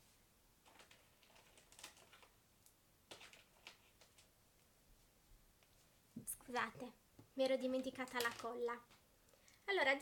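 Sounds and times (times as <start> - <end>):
faint clicks of small objects: 7.4 - 9.7.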